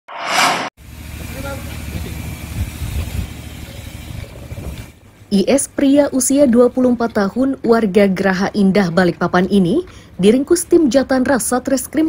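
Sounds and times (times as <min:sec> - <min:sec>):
low rumble: 0:00.0 - 0:00.8
short whoosh: 0:00.0 - 0:00.8.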